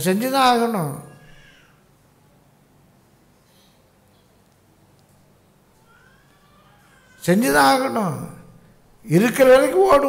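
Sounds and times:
man speaking: 0.0 - 1.1, 7.2 - 10.0.

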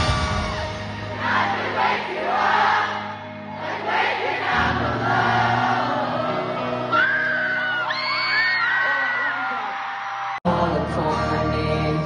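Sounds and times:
live rock band: 0.0 - 2.0
crowd singing in unison: 0.0 - 7.6.

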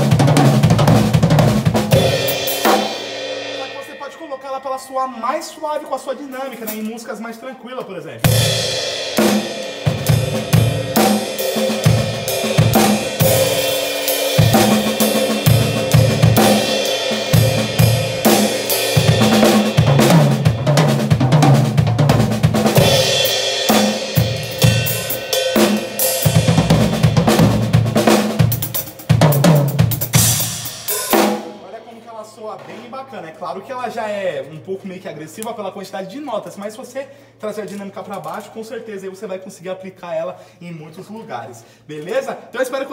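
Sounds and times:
drum kit playing fast: 0.0 - 4.8, 5.4 - 7.3, 8.2 - 31.8
cymbal crashes: 1.9 - 7.0, 8.2 - 20.7, 22.7 - 27.2, 30.2 - 31.6.

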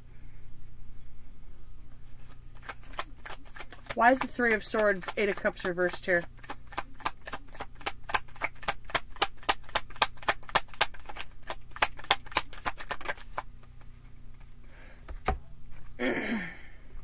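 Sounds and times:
cards being shuffled: 2.2 - 14.5.

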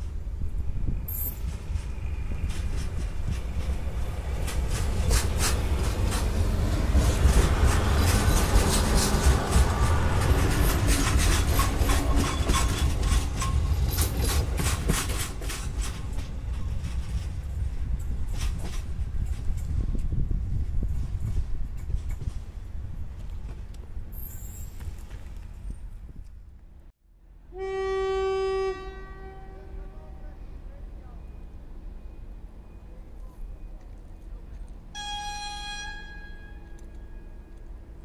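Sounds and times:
train wheels clicking over rail joints: 0.0 - 26.4
diesel train engine rumbling: 0.0 - 38.0.

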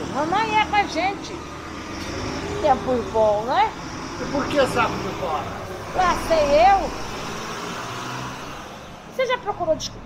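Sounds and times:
car passing: 0.0 - 10.0.

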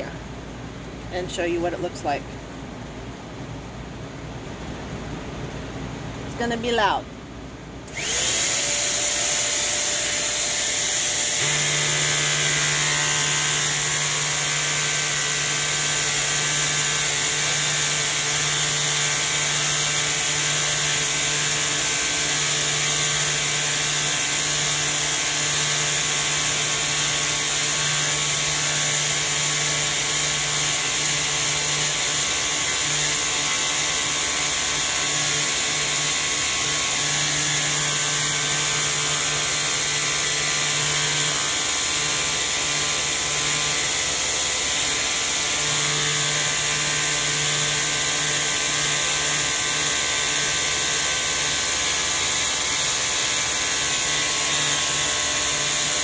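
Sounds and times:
vacuum cleaner motor running: 7.9 - 56.0.

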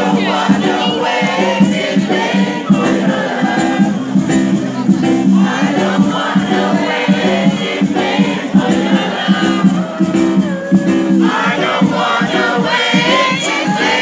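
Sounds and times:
crowd voices: 0.0 - 14.0
people singing: 0.0 - 14.0
reggae band playing: 0.0 - 14.0.

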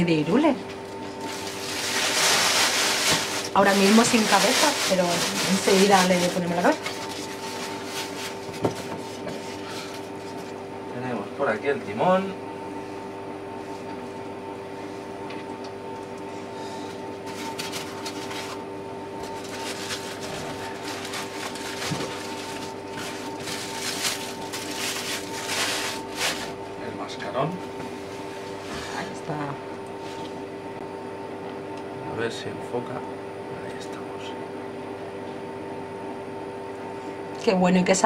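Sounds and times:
steady two-tone hum: 0.0 - 38.0
stiff plastic packaging crinkling: 0.8 - 9.2, 17.2 - 18.6, 19.2 - 26.6.

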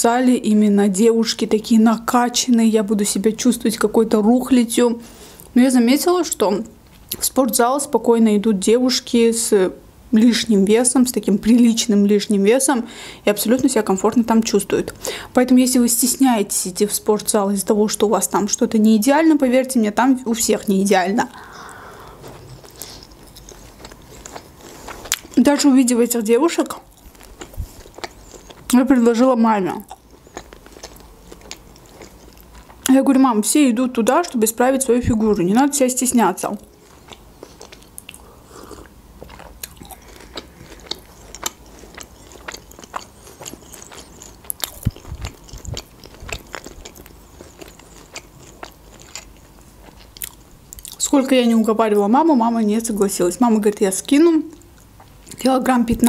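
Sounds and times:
mouth chewing with small clicks: 21.7 - 25.7, 26.7 - 28.8, 29.8 - 32.9, 36.6 - 51.1, 54.5 - 55.5.

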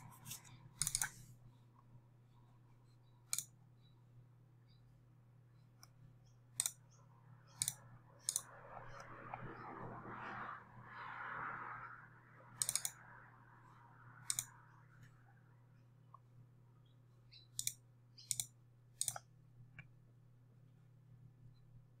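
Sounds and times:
soft rushing noise: 8.0 - 14.8.

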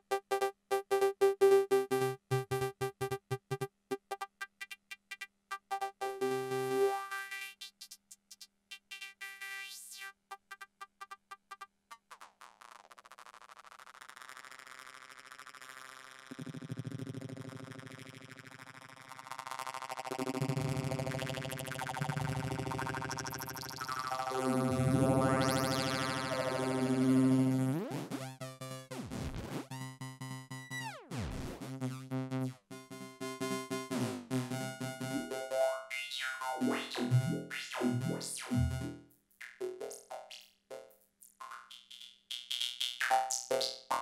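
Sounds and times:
synthesizer chords chopped by gate: 1.0 - 4.7, 20.4 - 39.0
synthesizer sweeps: 23.7 - 28.3, 34.9 - 39.0.

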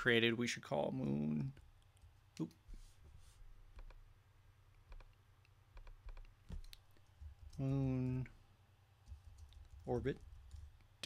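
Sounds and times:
mouse and keyboard clicks: 3.8 - 4.0, 4.9 - 7.6.

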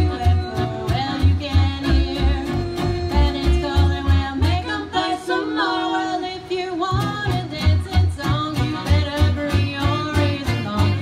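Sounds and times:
fiddle melody: 0.0 - 6.0, 6.8 - 11.0
acoustic guitar strumming: 0.0 - 11.0.

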